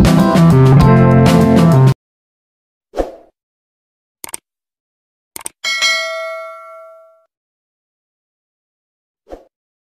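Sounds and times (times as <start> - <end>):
notification bell ding: 5.6 - 7.3.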